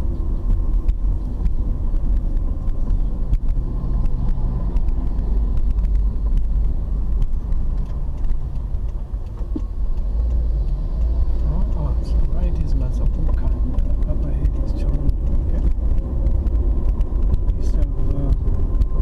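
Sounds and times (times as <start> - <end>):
engine and road rumble: 0.0 - 19.0.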